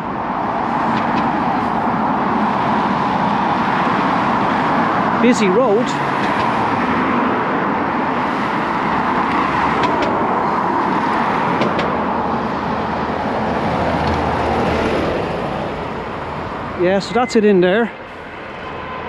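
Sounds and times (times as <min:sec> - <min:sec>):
bus engine rumble: 0:00.0 - 0:19.0
cars passing: 0:00.0 - 0:19.0.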